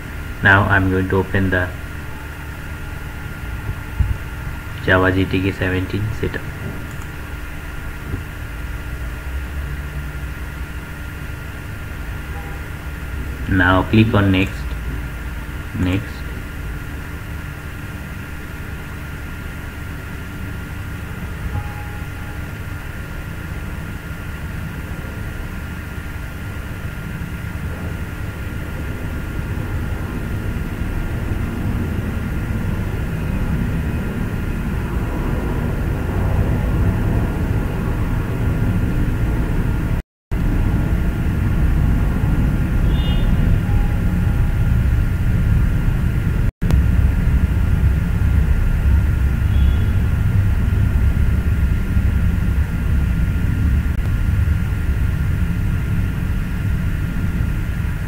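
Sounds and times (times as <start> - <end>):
faint high whine: 0.0 - 58.0
low rumbling noise: 0.0 - 58.0.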